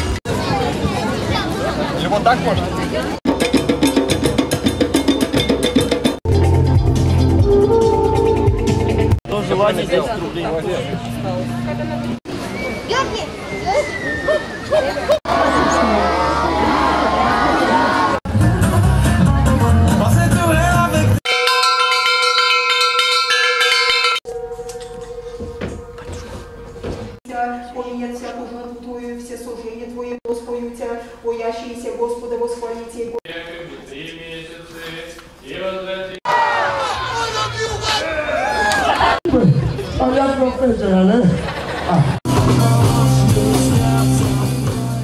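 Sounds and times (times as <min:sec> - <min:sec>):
drums and percussion beat: 0:02.6 - 0:09.2, 0:18.3 - 0:27.2, 0:42.2 - 0:45.0
music with heavy bass: 0:03.3 - 0:09.2, 0:18.3 - 0:21.2, 0:42.2 - 0:45.0
metal bell-like percussion ringing: 0:21.2 - 0:26.7.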